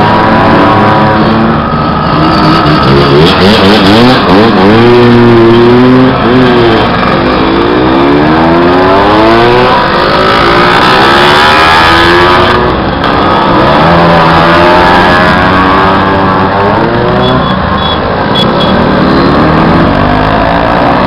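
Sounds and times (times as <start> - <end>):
scooter engines revving: 0.0 - 21.0.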